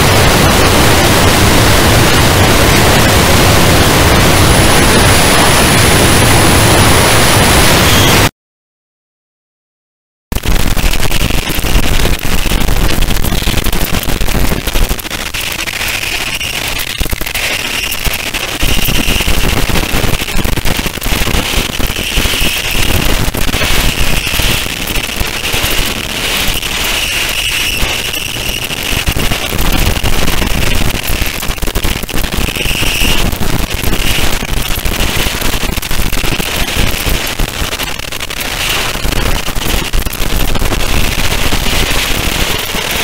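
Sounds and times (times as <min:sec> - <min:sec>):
crackling distorted static: 0:00.0 - 0:08.3, 0:10.3 - 0:43.0
shrill high noise band: 0:14.7 - 0:39.2.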